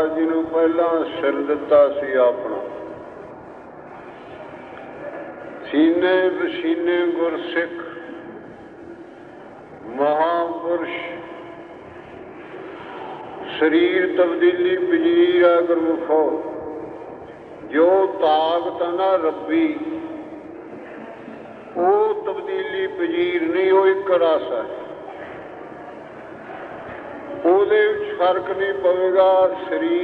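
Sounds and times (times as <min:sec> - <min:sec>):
man speaking: 0:00.0 - 0:03.0, 0:05.6 - 0:08.3, 0:09.8 - 0:11.7, 0:12.9 - 0:20.4, 0:21.7 - 0:25.0, 0:27.4 - 0:30.0
old recording background noise: 0:00.0 - 0:30.0.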